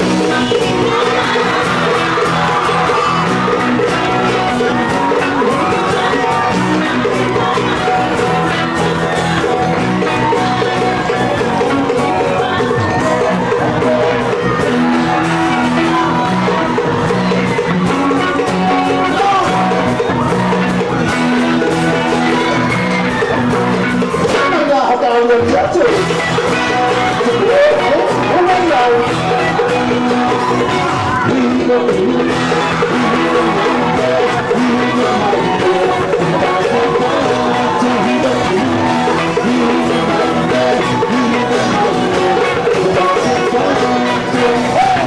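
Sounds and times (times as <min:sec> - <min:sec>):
crowd shouting and whooping: 0:00.0 - 0:45.0
electric guitar: 0:00.0 - 0:45.0
person singing: 0:00.0 - 0:45.0
pop band playing live: 0:00.0 - 0:45.0.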